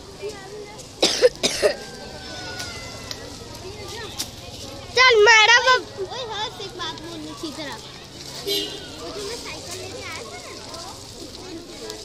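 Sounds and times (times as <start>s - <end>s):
crowd background: 0.0s - 12.0s.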